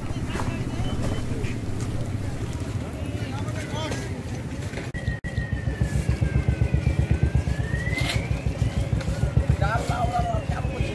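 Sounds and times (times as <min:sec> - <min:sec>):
motorcycle engine running: 0:00.0 - 0:03.1, 0:05.0 - 0:10.9.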